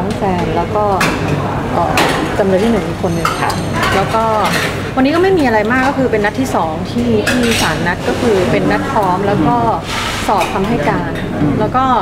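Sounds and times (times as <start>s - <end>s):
woman talking: 0.0s - 12.0s
dishes and cutlery clinking: 1.0s - 9.5s.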